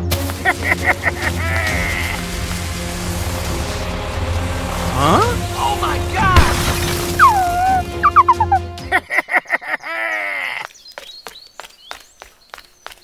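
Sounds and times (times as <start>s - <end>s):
low drone: 0.0s - 8.2s.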